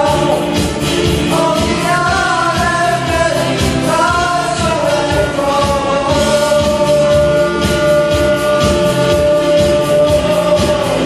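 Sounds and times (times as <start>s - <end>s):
person singing: 0.0s - 11.0s
steady beat: 0.0s - 11.0s.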